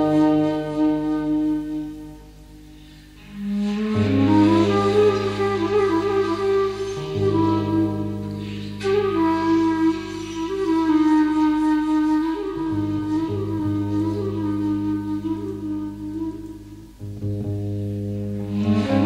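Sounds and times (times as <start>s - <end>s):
flute melody: 0.0s - 19.0s
low bass guitar notes: 16.9s - 19.0s.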